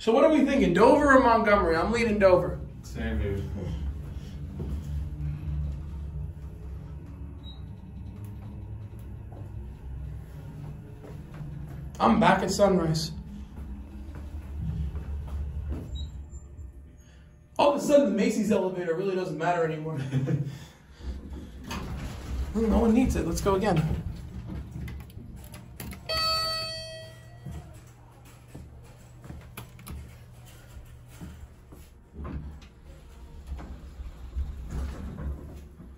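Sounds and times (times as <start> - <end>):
elevator hum and rumble: 0.0 - 35.9
elevator chime ding: 26.0 - 28.1.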